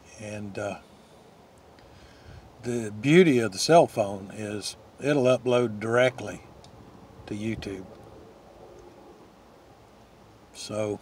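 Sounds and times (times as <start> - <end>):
wind rumble on microphone: 6.4 - 9.4.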